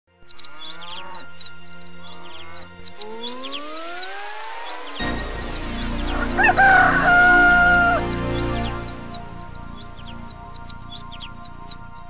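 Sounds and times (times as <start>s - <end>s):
rooster crowing: 6.1s - 8.2s.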